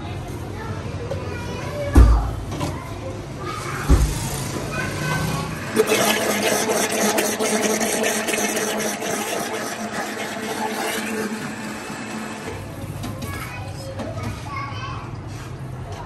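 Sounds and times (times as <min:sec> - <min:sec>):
blender motor running: 0:04.2 - 0:12.8.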